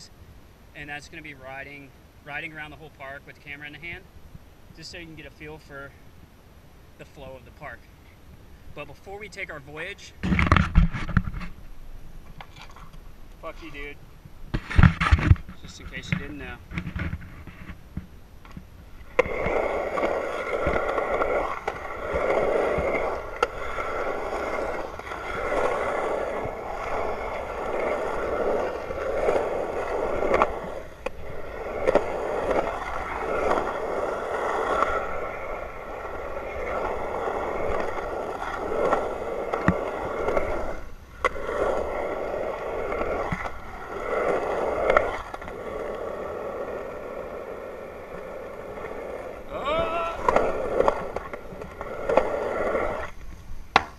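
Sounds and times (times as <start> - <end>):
skateboard wheels rolling on concrete: 0.0 - 53.9
skateboard clacks: 14.5 - 46.1, 48.8 - 53.9.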